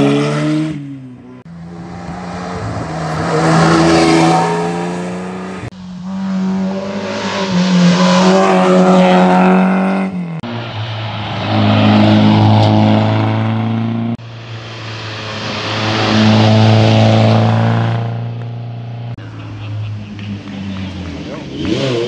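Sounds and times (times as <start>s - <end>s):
rally car engines at high revs: 0.0s - 22.0s.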